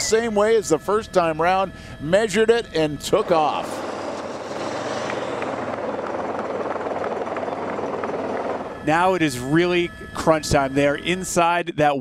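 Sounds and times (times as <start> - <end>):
motor engines droning: 0.0 - 11.6.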